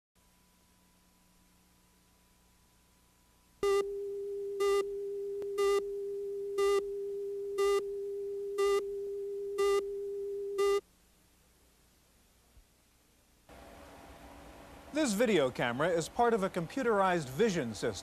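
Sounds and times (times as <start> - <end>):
short beeps: 3.6 - 4.9, 5.5 - 5.9, 6.6 - 6.8, 7.6 - 10.8
steady line-up tone: 3.6 - 10.8.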